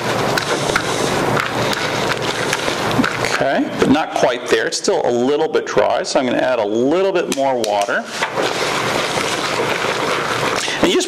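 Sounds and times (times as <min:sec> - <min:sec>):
hand squeezing gritty clay mix: 0:07.6 - 0:11.0.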